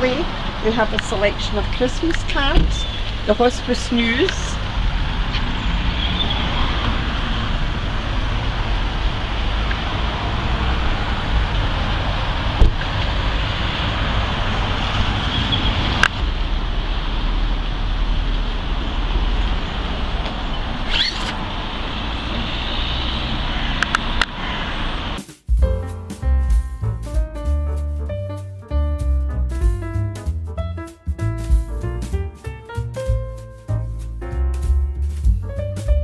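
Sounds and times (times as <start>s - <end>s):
road traffic: 0.0s - 25.2s, 29.2s - 36.0s.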